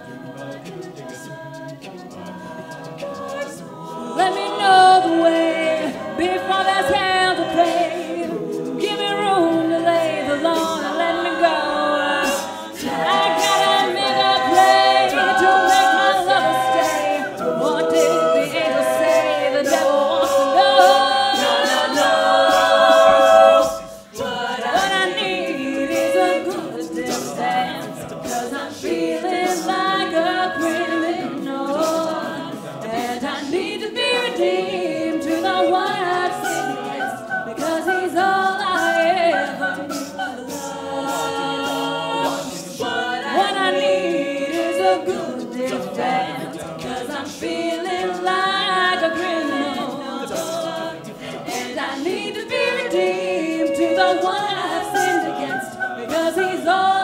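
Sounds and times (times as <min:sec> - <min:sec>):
sung backing harmonies: 0:00.0 - 0:57.0.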